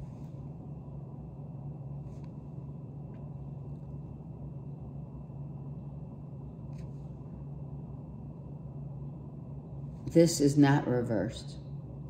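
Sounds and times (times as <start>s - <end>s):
low room tone hum: 0.0s - 12.0s.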